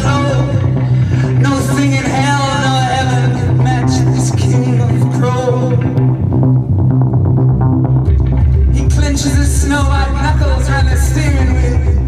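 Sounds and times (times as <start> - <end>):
bass guitar: 0.0 - 12.0
electric guitar: 0.0 - 12.0
drums and cymbals: 7.5 - 12.0.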